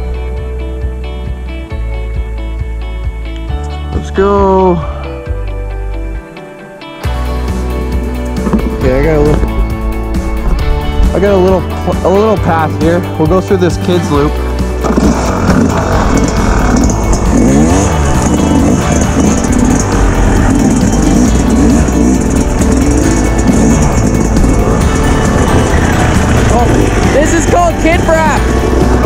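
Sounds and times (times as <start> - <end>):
music: 0.0 - 29.0
dirt bike engine revving: 7.2 - 29.0.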